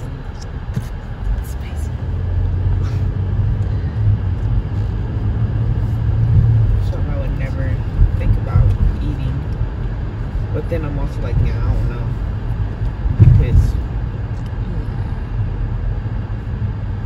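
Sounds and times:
car engine and tyre rumble: 0.0s - 17.0s.

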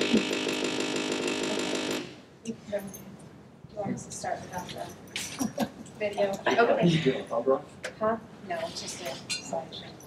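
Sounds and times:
quiet voices murmuring: 3.8s - 10.0s.

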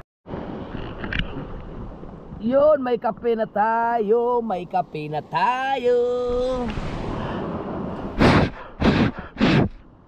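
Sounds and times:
man breathing into microphone: 7.0s - 9.9s.

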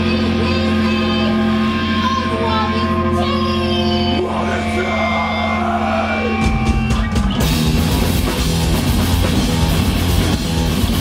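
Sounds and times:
distorted guitar and bass chord: 0.0s - 11.0s.

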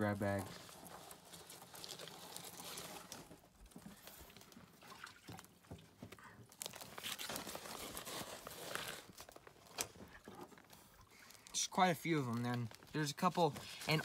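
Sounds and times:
water splashes and drips: 0.7s - 7.4s.

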